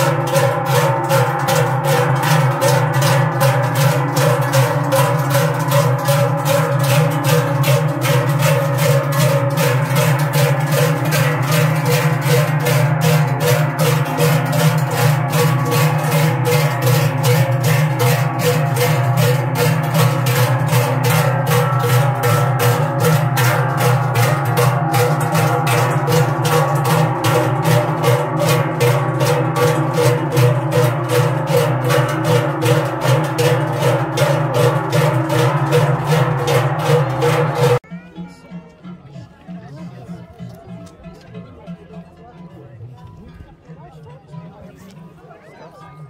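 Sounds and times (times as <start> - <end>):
large cowbells clanging: 0.0 - 46.0.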